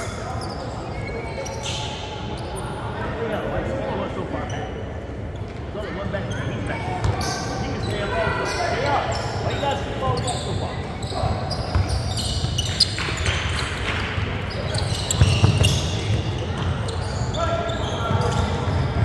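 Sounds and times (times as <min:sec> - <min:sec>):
sneakers squeaking: 0:00.0 - 0:03.1, 0:06.2 - 0:19.0
spectators chattering: 0:00.0 - 0:19.0.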